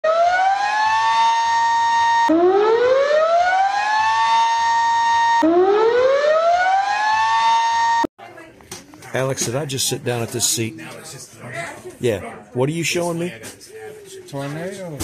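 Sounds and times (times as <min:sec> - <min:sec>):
warning siren winding up: 0:00.0 - 0:08.1.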